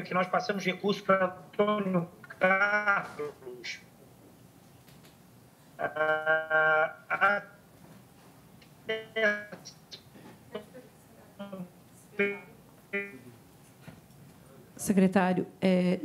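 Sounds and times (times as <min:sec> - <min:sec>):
man's choppy robotic voice: 0:05.8 - 0:07.6.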